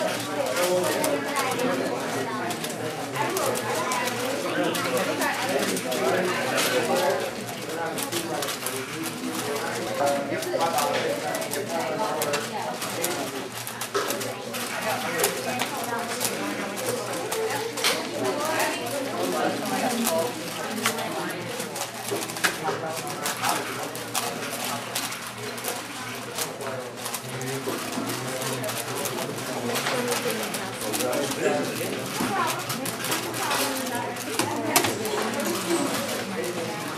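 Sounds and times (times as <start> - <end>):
indistinct chatter of voices: 0.0 - 36.9.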